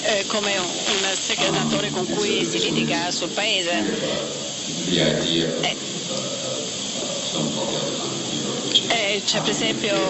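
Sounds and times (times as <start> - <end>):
faint voices: 0.0 - 10.0
recording hiss: 0.0 - 10.0.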